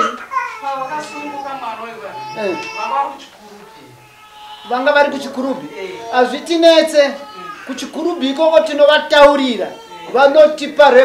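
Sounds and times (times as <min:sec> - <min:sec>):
child crying and whimpering: 0:00.0 - 0:03.2, 0:03.8 - 0:07.9, 0:09.6 - 0:10.2.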